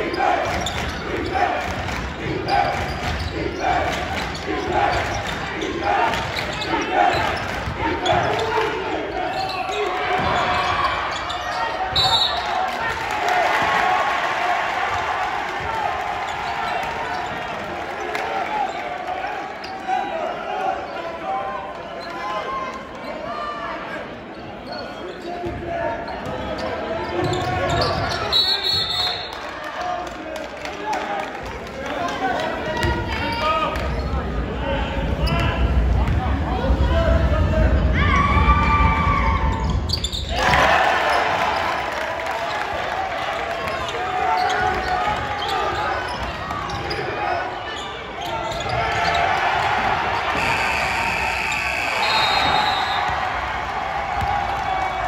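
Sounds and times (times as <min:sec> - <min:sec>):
players and spectators chattering: 0:00.0 - 0:55.0
short high whistle blast: 0:50.4 - 0:53.1.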